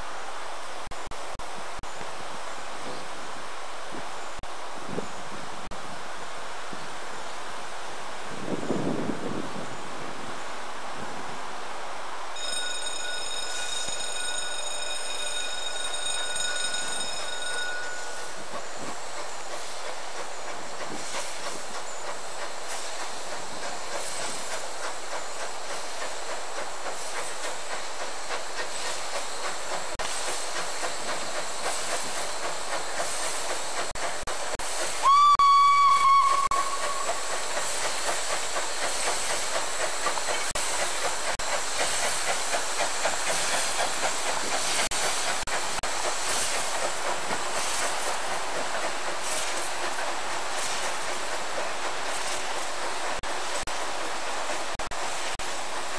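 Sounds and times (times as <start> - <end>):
steam locomotive running: 0.0 - 55.9
steam hissing: 1.6 - 55.9
steam whistle: 35.0 - 37.2.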